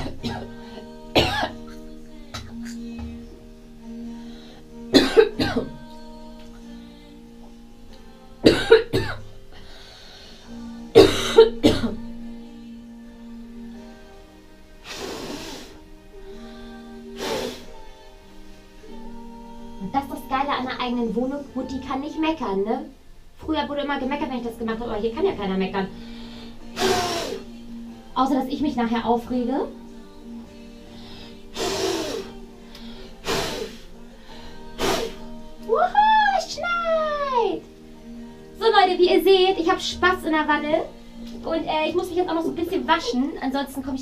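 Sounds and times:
background music held notes: 0.0s - 44.0s
hissing puffs of breath: 4.1s - 4.8s, 9.5s - 10.6s, 14.8s - 18.8s, 25.9s - 27.6s, 30.8s - 35.5s.

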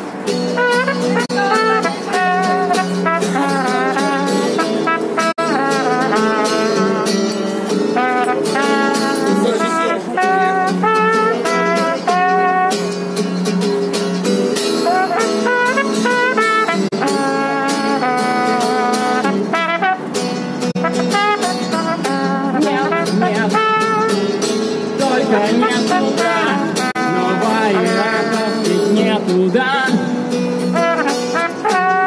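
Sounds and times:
strummed acoustic guitar: 0.0s - 32.0s
trombone playing jazzy melody: 0.4s - 13.3s, 14.4s - 29.3s, 30.5s - 32.0s.

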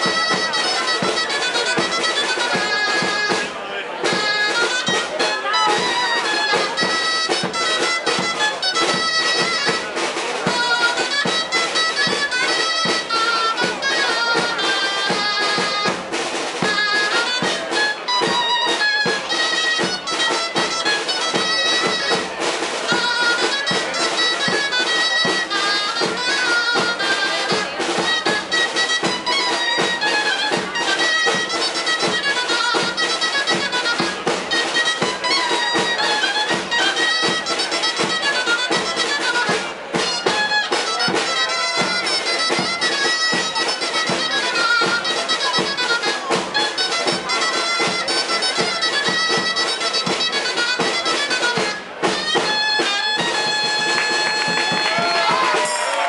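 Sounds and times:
shawm playing lively melody: 0.0s - 56.0s
snare drum: 0.0s - 56.0s
bass drum with cymbal: 4.1s - 44.2s.

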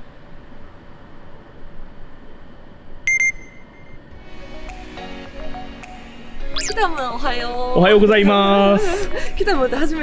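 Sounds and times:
city street background noise: 0.0s - 10.0s
sharp high electronic beeps: 6.6s - 6.8s.

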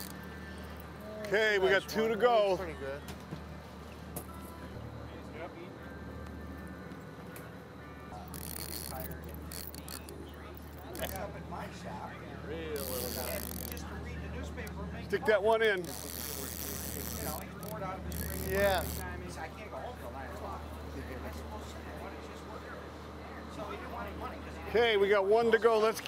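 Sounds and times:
boat engine low drone: 0.0s - 26.0s
faint voices: 0.0s - 26.0s.

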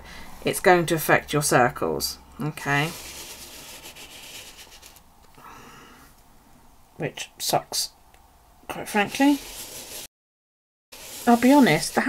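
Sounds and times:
marker pen scratching on paper: 2.7s - 5.0s, 8.9s - 10.1s.

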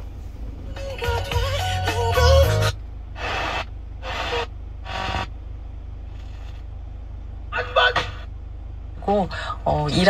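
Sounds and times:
low steady hum: 0.0s - 10.0s
radio static bursts: 3.2s - 5.4s.

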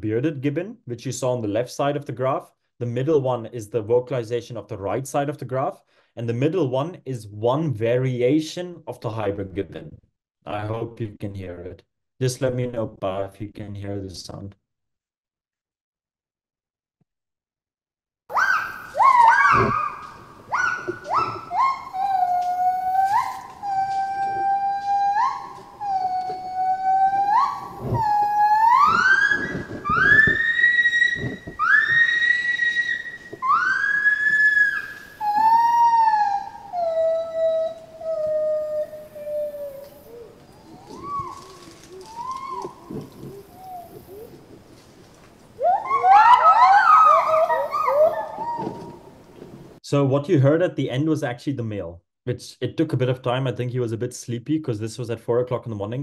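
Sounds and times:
gibbon whooping song: 18.3s - 44.5s, 45.6s - 49.1s.

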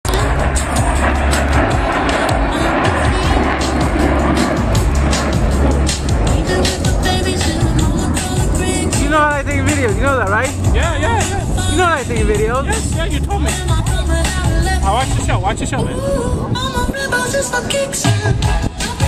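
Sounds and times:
jet roar: 0.0s - 19.0s
music over loudspeakers: 0.0s - 19.0s.

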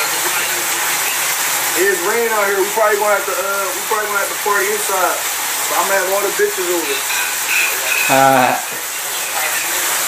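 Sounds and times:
rain hissing: 0.0s - 10.0s
short held voice: 8.1s - 8.7s.

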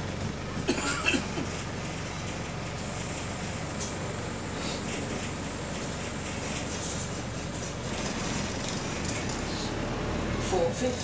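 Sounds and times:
bus body rattling: 0.0s - 10.9s
bus engine low rumble: 0.0s - 11.0s.

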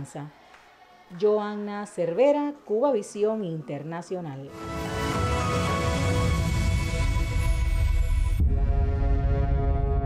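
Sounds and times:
deep throbbing pulse: 5.4s - 10.0s.

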